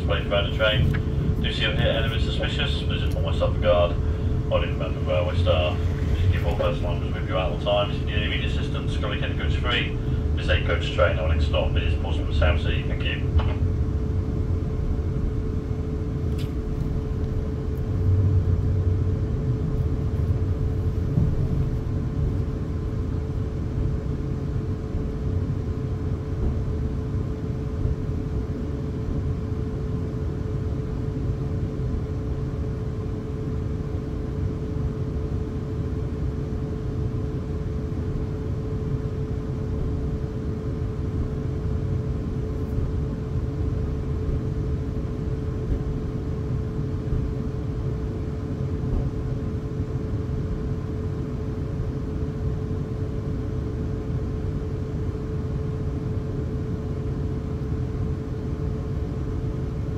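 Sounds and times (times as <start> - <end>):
train running low rumble: 0.0 - 56.6
constant hum: 0.0 - 59.9.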